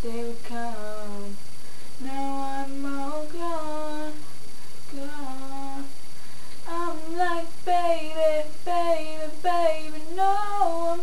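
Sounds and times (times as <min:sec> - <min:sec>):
woman singing unaccompanied: 0:00.0 - 0:11.0.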